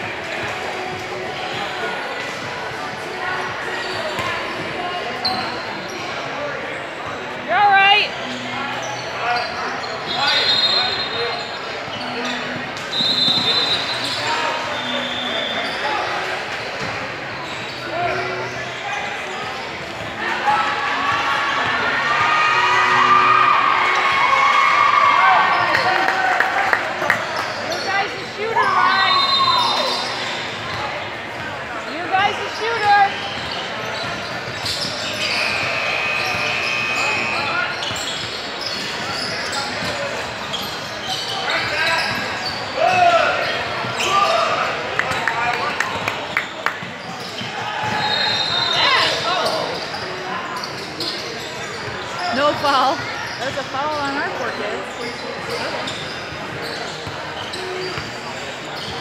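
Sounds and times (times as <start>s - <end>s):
sneaker squeaks: 0.0s - 7.3s, 8.2s - 20.4s, 27.1s - 59.0s.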